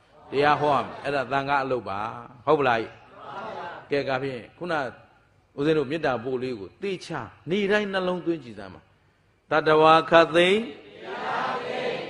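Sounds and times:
man giving a sermon: 0.2 - 3.1, 3.8 - 11.0.

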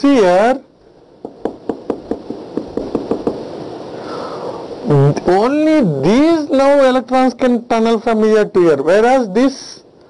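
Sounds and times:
marker tapping on whiteboard: 1.2 - 3.4.

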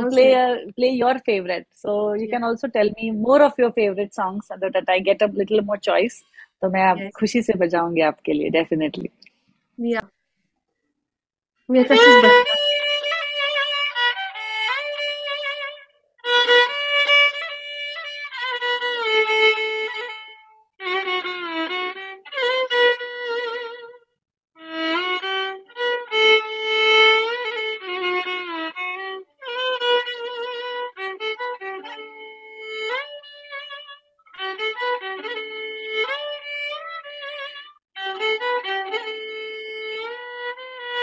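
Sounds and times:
solo violin melody: 11.7 - 41.0.

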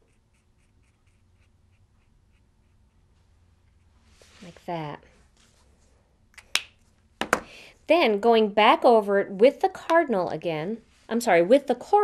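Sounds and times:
marker scratching on card: 0.0 - 4.8.

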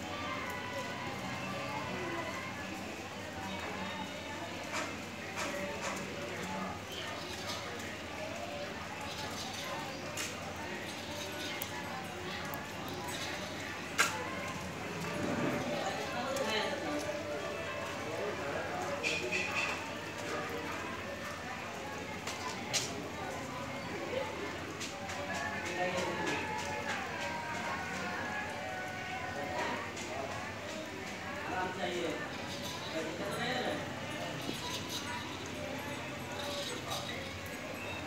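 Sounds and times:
people talking indistinctly: 0.0 - 38.0.

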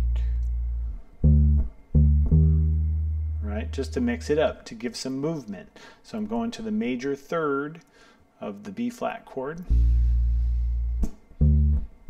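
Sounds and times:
plucked electric bass notes: 0.0 - 4.6, 9.6 - 12.0.

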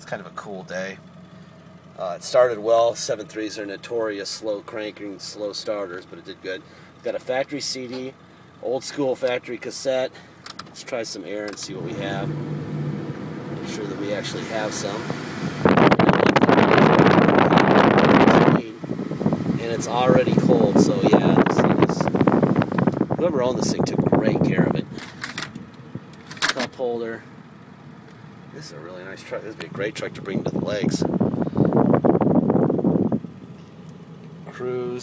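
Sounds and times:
diesel engine idling: 0.0 - 35.0
air rushing from vents: 11.6 - 26.3, 29.0 - 33.8
wind buffeting microphone: 15.0 - 24.9, 30.4 - 33.3
phone handling rustle: 24.9 - 26.7.

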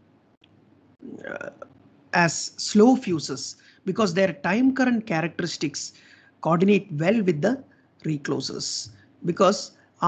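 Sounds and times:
person saying uh: 1.0 - 1.7.

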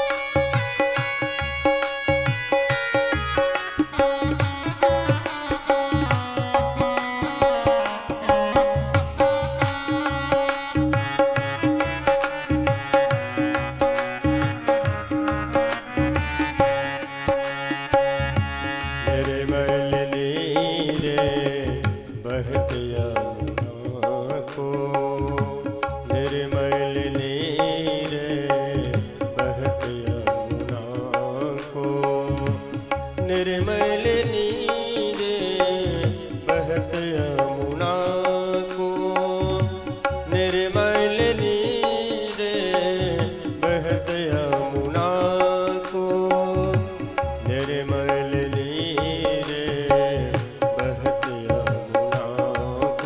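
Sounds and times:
electronic keyboard melody: 0.0 - 19.8
hand drum beat: 0.0 - 53.0
tabla rhythm: 0.0 - 53.0.

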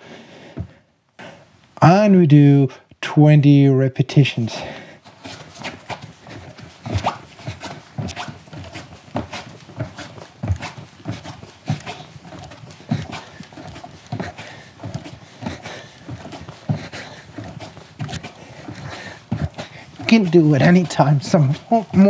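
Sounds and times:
man breathing rhythmically: 0.0 - 1.7, 4.5 - 22.0
bare feet thudding on a rug: 5.0 - 22.0.

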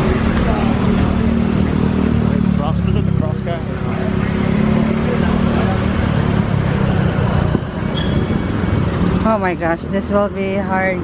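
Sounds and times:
motorcycles passing: 0.0 - 11.0
van engine rumble: 0.0 - 11.0.

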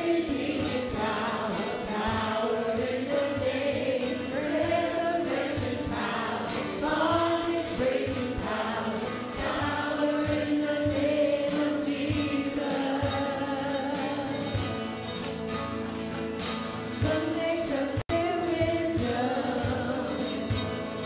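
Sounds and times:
women singing together: 0.0 - 14.8, 16.9 - 21.0
drum kit beat: 0.0 - 21.0
strummed acoustic guitars: 0.0 - 21.0.

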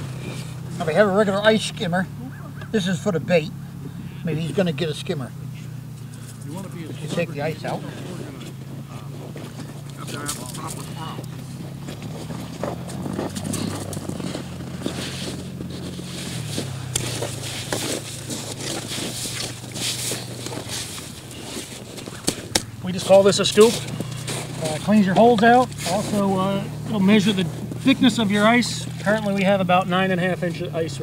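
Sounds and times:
low engine hum: 0.0 - 31.0
ice skimmer scraping slush: 7.0 - 22.2, 23.0 - 29.5.

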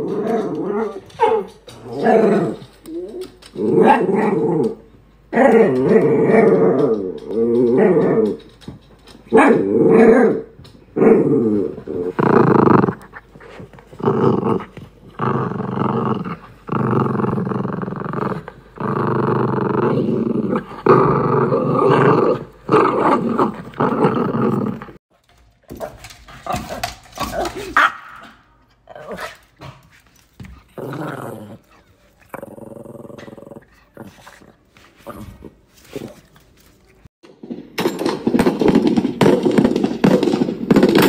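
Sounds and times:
dog growling: 0.0 - 8.5, 9.6 - 25.0, 30.6 - 36.2.

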